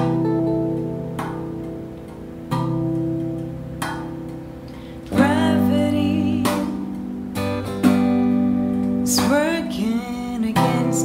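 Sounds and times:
electric guitar chords ringing: 0.0 - 11.0.

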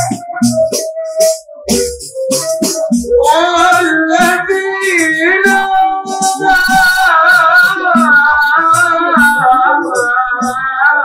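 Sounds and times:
boy singing into microphone: 0.0 - 11.0.

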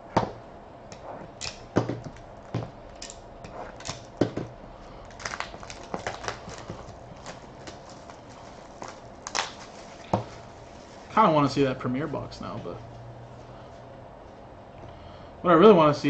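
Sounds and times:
plastic wrap crackling: 3.7 - 11.1.

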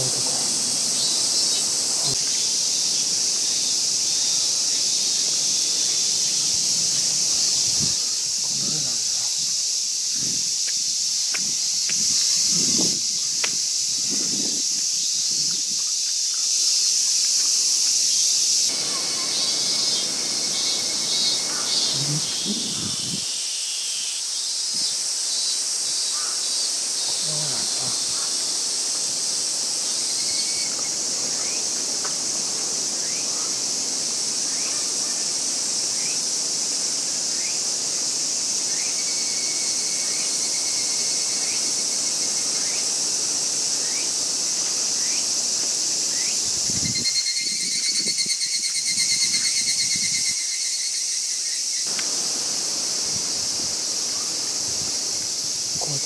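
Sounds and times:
high-pitched insect chorus: 0.0 - 56.0
rapidly pulsing insect call: 0.0 - 56.0.

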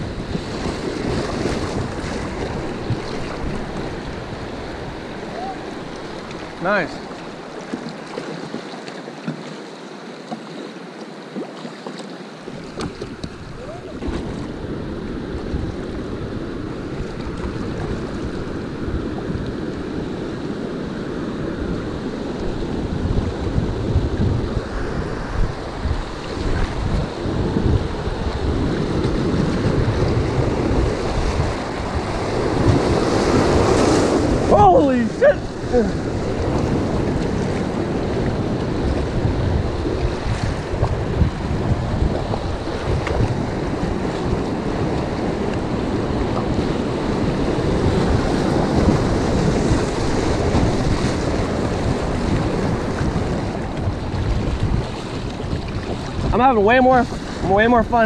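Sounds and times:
wind buffeting microphone: 0.0 - 7.6, 12.5 - 58.0
rapids rushing and splashing: 0.0 - 58.0.

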